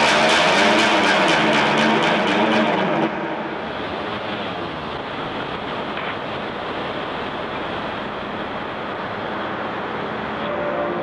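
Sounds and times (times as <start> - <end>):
held pitched tones: 0.0 - 4.5
dark ambient drone music: 0.0 - 4.9, 10.4 - 11.0.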